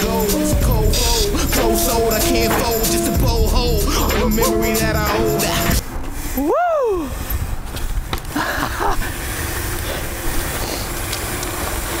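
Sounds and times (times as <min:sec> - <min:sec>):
bicycle tyres rolling on concrete: 0:00.0 - 0:12.0.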